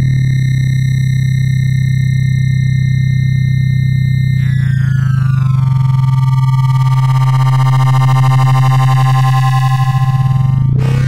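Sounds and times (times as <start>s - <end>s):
loud steady low synth drone: 0.0s - 11.0s
fixed high tones: 4.3s - 11.0s.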